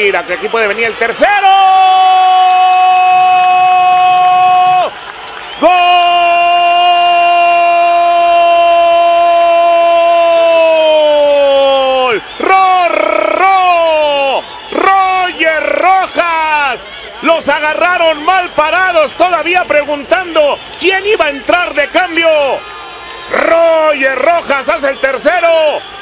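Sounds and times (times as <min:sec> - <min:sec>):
excited shouts: 0:00.0 - 0:26.0
commentator's drawn-out goal cry: 0:05.6 - 0:22.6, 0:23.2 - 0:25.9.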